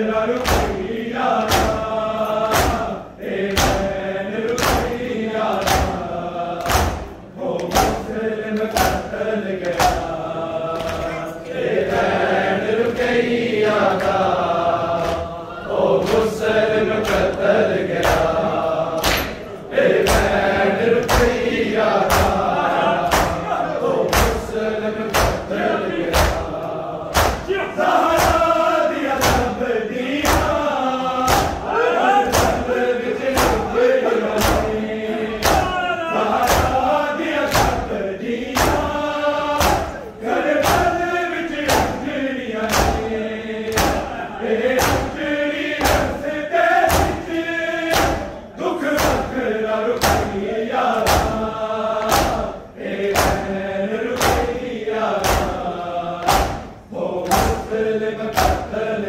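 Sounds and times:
men chanting in chorus: 0.0 - 59.0
hands striking bare chests: 4.5 - 6.0, 6.6 - 10.1, 19.0 - 20.4, 31.3 - 31.7, 43.7 - 44.1, 44.8 - 45.2, 52.0 - 52.4, 53.1 - 53.5, 55.2 - 55.6.

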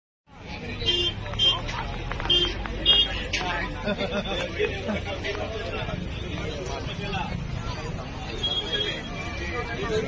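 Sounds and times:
people talking and calling out: 0.3 - 10.0
traffic rumble: 0.3 - 10.0.

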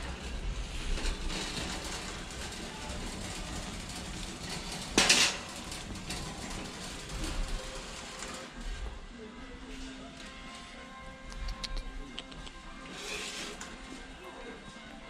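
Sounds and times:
cart clatter: 0.0 - 8.9
shopping cart rolling on concrete: 0.0 - 10.9, 12.6 - 15.0.

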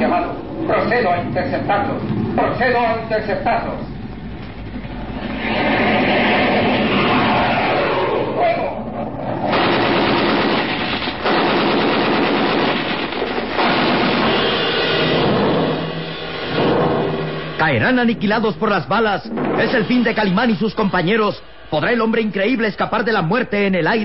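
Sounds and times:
jet aircraft rushing in: 3.8 - 10.2
machine-gun fire bursts: 9.5 - 17.5.

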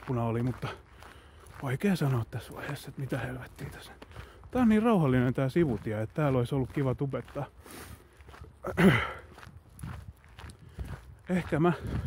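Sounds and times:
footsteps on road: 0.0 - 12.0.

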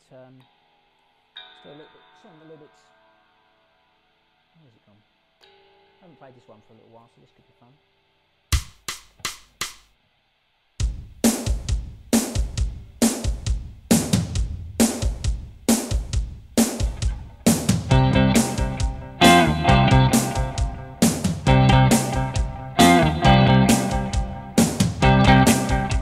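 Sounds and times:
drums playing rock beat: 8.5 - 9.9, 10.8 - 26.0
electric guitar: 16.9 - 26.0.

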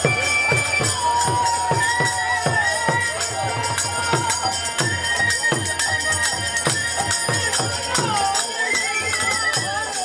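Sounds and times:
bamboo flute high note: 0.0 - 10.0.

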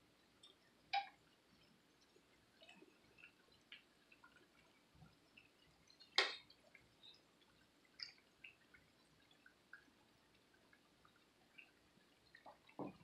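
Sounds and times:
oil crackling and popping: 0.2 - 13.0.

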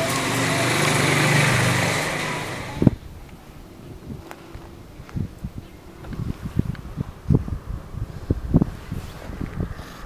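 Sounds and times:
passing vehicle engine: 0.0 - 3.0.

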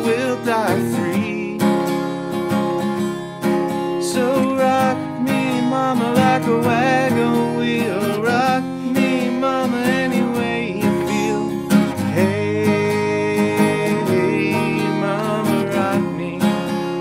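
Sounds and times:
acoustic guitar strumming: 0.0 - 17.0
man singing: 0.0 - 17.0.

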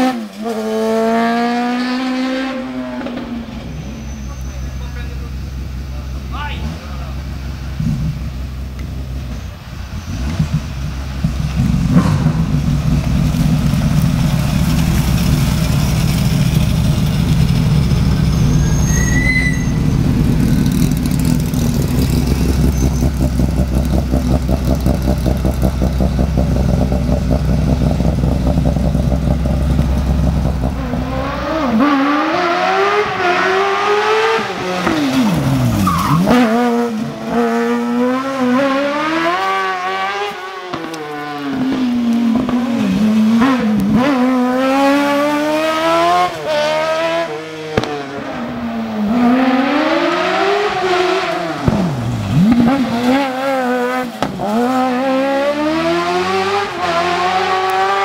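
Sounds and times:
race car engine revving: 0.0 - 9.2, 10.1 - 58.0
deep engine rumble: 3.2 - 31.4.

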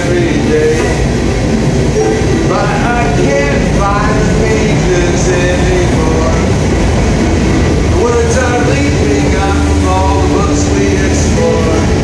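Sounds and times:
man singing: 0.0 - 1.2, 2.0 - 6.6, 7.9 - 12.0
strummed ukulele: 0.0 - 6.3
train rumbling and rattling: 0.0 - 12.0.

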